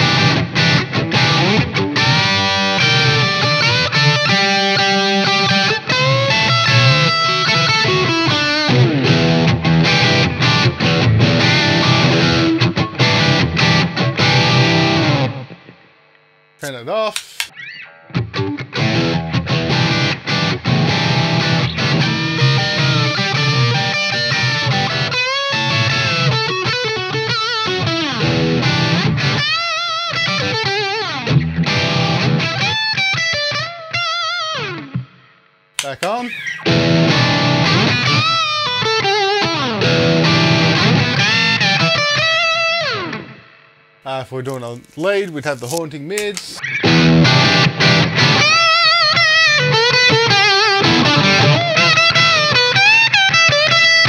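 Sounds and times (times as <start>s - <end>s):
overdriven electric guitar: 0.0s - 15.9s, 17.2s - 43.7s, 45.7s - 54.0s
click: 17.1s - 17.5s.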